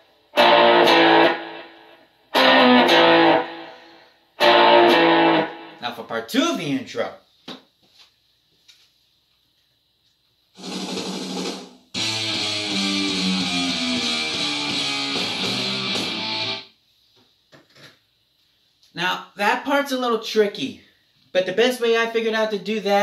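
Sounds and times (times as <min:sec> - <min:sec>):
electric guitar bar chords: 0:00.0 - 0:05.8, 0:11.9 - 0:16.7
electric guitar chord ringing: 0:00.4 - 0:05.8, 0:12.0 - 0:16.6.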